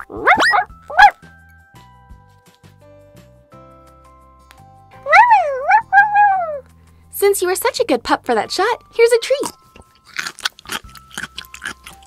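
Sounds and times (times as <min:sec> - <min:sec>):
puppy yelps: 0:00.0 - 0:01.2, 0:05.0 - 0:06.7
soft background music: 0:00.0 - 0:12.0.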